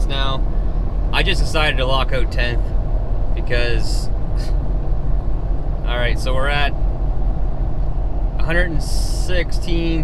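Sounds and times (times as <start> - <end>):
engine and road noise drone: 0.0 - 10.0.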